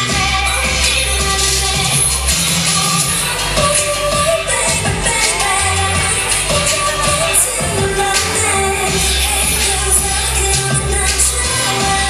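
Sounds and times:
pop song with female singing: 0.0s - 12.0s.

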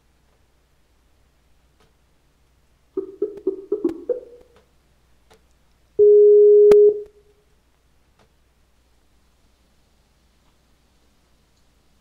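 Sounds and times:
short low telephone beeps: 6.0s - 7.1s
steady low telephone beep: 6.0s - 7.2s.

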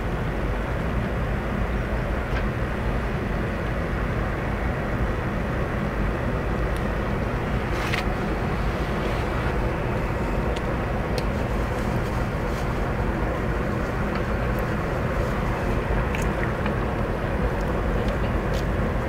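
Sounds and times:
ship engines rumbling: 0.0s - 19.0s.

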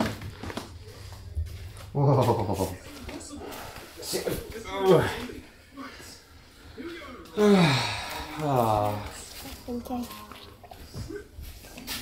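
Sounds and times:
household movement: 0.0s - 6.0s
low vocal moan: 7.4s - 9.0s.

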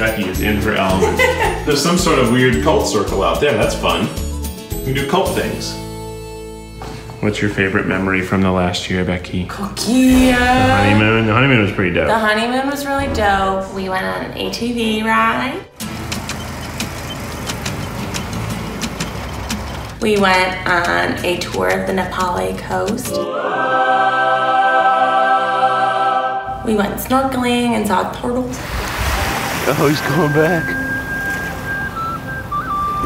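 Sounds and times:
off-road buggy engine running: 15.8s - 21.4s
small waves washing on sand: 28.6s - 31.7s
whistle-like tune: 29.8s - 33.0s.

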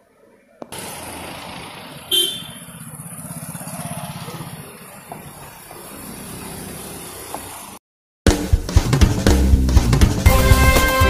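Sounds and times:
street noise: 0.0s - 7.8s
vehicle engine pulsing: 0.7s - 7.8s
vehicle horn toot: 2.1s - 2.8s.

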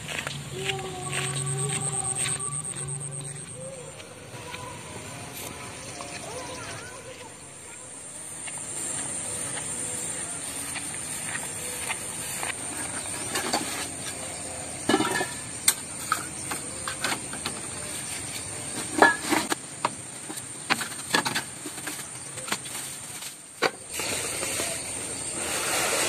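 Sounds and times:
insects chirring: 0.2s - 26.0s.

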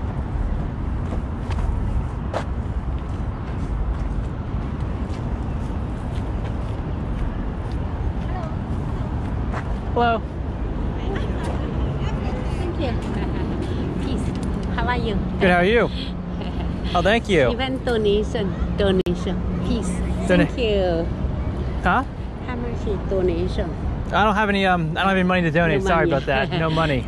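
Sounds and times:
distant traffic rumble: 0.0s - 27.0s
faint voices of passers-by: 4.5s - 27.0s.

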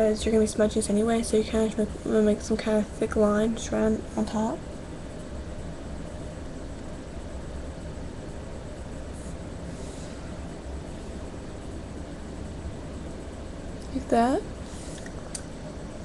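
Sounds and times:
low hum: 0.0s - 16.0s.

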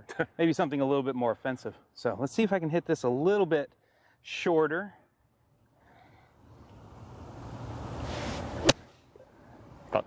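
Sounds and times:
golf club striking ball: 8.6s - 9.0s.

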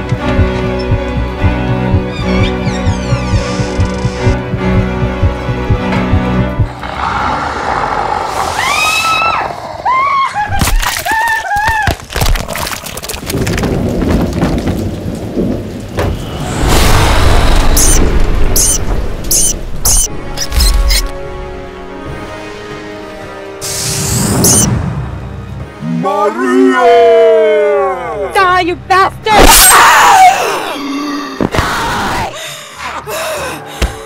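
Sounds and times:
high chirping blips: 0.4s - 4.4s, 17.7s - 20.1s, 24.4s - 24.7s
loud rumbling noise: 3.0s - 10.0s, 13.7s - 19.3s
rising and falling shrieks: 6.7s - 10.5s.

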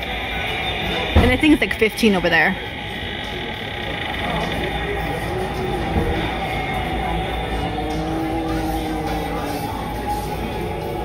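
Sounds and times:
busy shop noise: 0.0s - 11.0s.

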